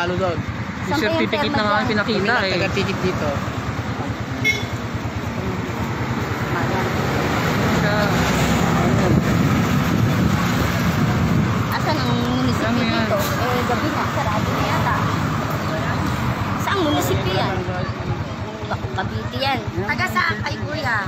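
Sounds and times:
indistinct voices talking: 0.0s - 21.0s
street traffic noise: 0.0s - 21.0s
vehicle engine running: 0.0s - 21.0s.

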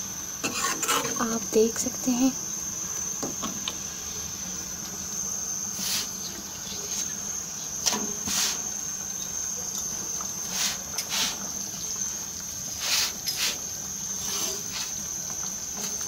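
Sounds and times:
short hisses: 5.8s - 6.2s, 12.8s - 13.6s.

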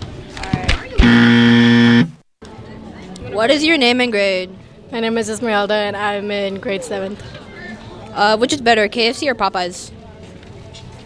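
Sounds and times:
game show buzzer: 1.0s - 2.2s.

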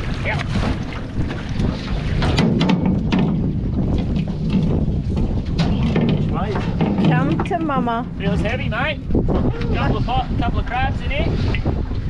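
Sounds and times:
wind buffeting microphone: 0.0s - 12.0s
knocks on metal hull: 2.2s - 3.6s, 5.6s - 7.8s.

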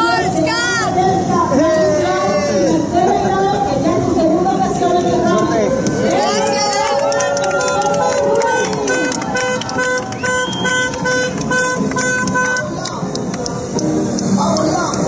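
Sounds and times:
people's voices: 0.0s - 15.0s
car horn short toots: 8.9s - 12.8s.

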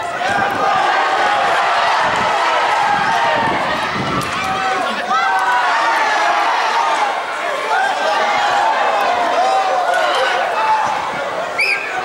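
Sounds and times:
people shouting over one another: 0.0s - 12.0s.

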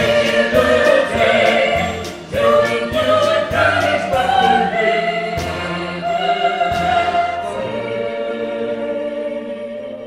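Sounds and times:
singers with orchestra: 0.0s - 10.0s.

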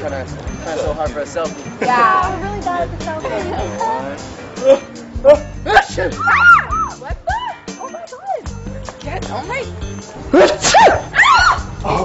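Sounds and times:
women shrieking: 5.7s - 8.5s, 10.4s - 12.0s
woman exclaiming: 5.8s - 8.5s.

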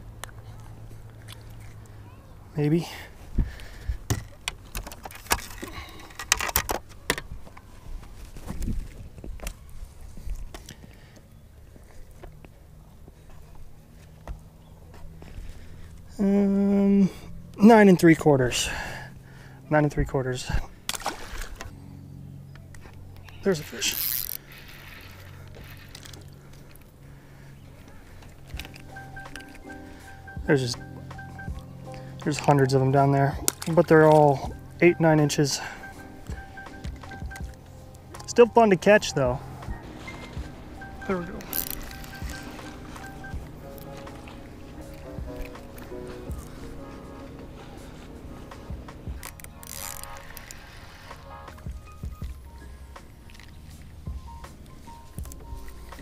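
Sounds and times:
fish and gear clattering on boat deck: 3.4s - 9.5s, 22.8s - 56.0s
electric trolling motor humming: 21.5s - 56.0s
music with repeating beeps: 28.6s - 53.0s.

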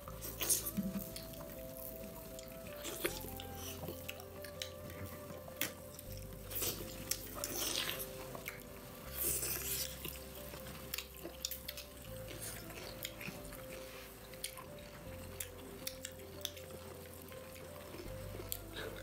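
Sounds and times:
chewing and mouth noises: 0.0s - 19.0s
soft background music: 0.0s - 19.0s.

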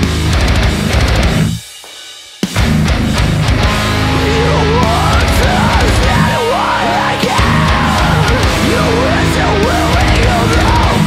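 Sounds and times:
metalcore band playing: 0.0s - 11.0s.

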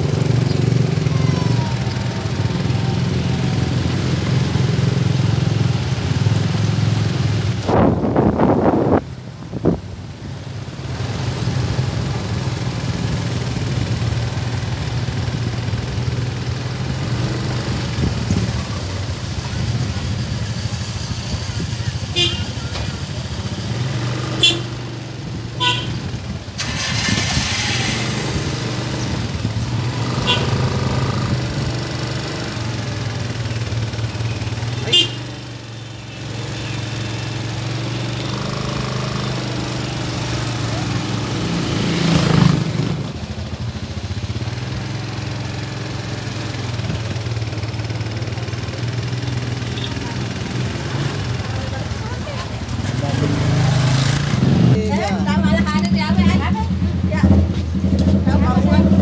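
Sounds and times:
cars and motorcycles passing slowly: 0.0s - 59.0s.

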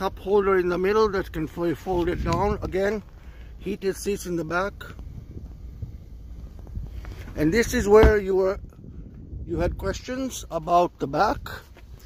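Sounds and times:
wind noise on microphone: 0.2s - 12.0s.

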